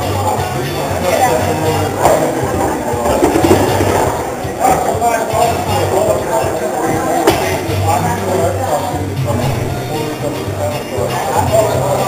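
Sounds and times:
indistinct chatter: 0.0 - 12.0
music playing low: 0.0 - 12.0.

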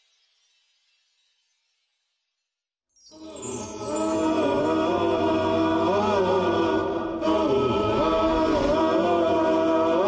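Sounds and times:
choir-like vocal chanting: 3.3 - 10.0.

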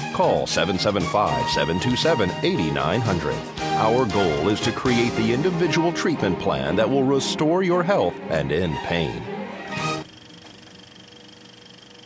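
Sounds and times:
thin steady hum: 9.8 - 12.0.

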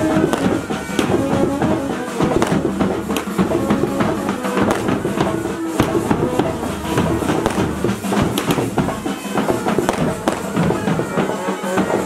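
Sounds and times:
bagpipes playing melody: 0.0 - 12.0
bass and snare drums: 0.0 - 12.0.

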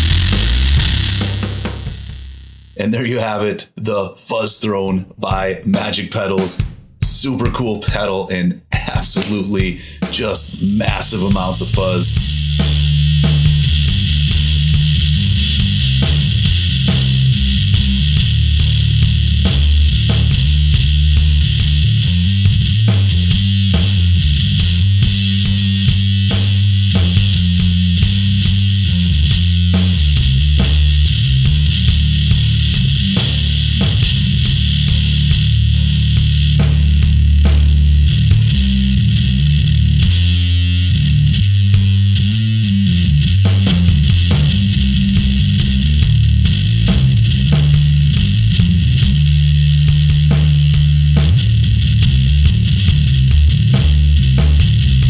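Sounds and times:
distorted fuzz bass riffs: 0.0 - 3.5, 8.7 - 55.0.

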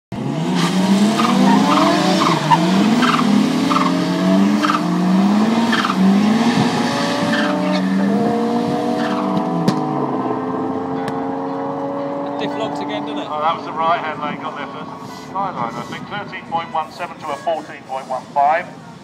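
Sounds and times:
race car engine revving: 0.1 - 16.5.

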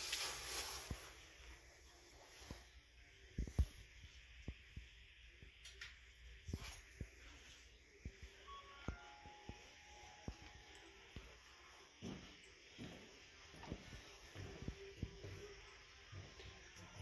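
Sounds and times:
footsteps on wooden floor: 11.9 - 17.0.

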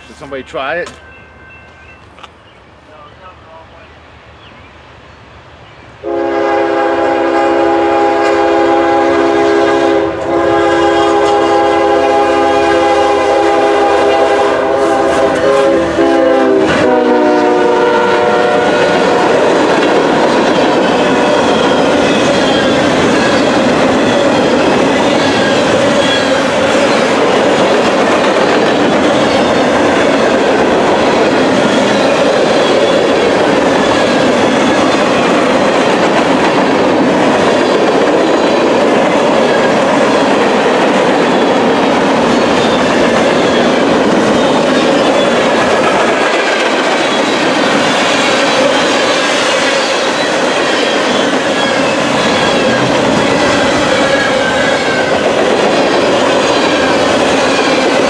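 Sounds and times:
freight train wheels on rails: 0.0 - 58.0.

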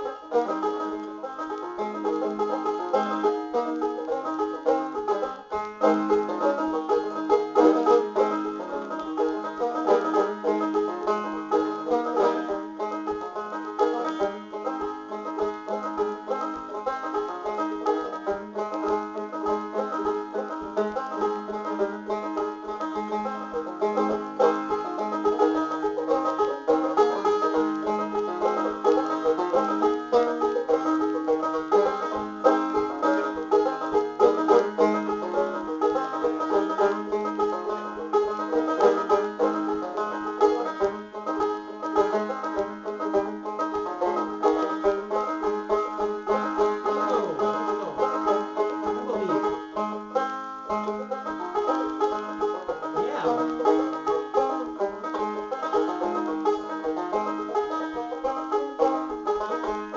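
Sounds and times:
banjo playing: 0.0 - 59.9.

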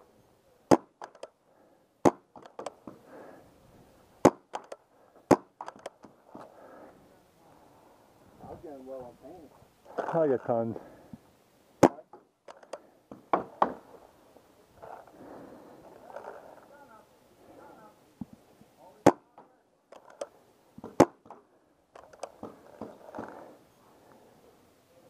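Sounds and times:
paintball markers firing: 0.7 - 1.4, 2.0 - 3.0, 4.2 - 6.1, 11.8 - 13.9, 19.0 - 21.4.

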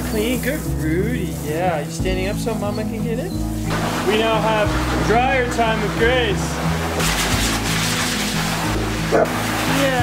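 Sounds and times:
background music: 0.0 - 10.0
dryer blowing air: 3.7 - 10.0.

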